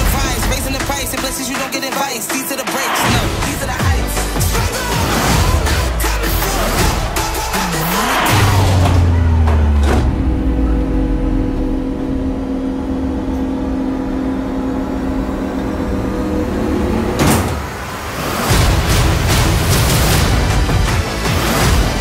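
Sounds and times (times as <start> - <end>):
droning hum of held tones: 10.0 - 18.0.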